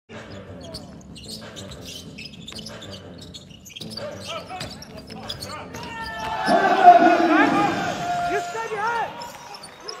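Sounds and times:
sneaker squeaks on court: 0.2s - 6.6s
commentator shouting excitedly: 5.7s - 9.2s.

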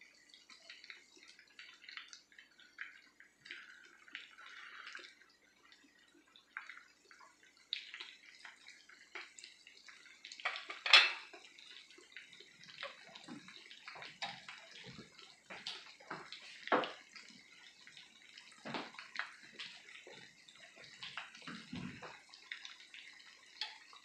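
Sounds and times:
food frying in hot oil: 0.0s - 24.0s
oil crackling and popping: 0.1s - 24.0s.

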